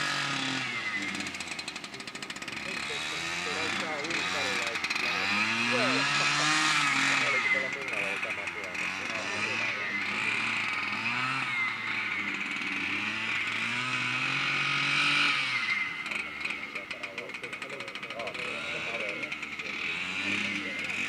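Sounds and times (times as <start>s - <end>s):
lure coursing machine engine: 0.0s - 21.0s.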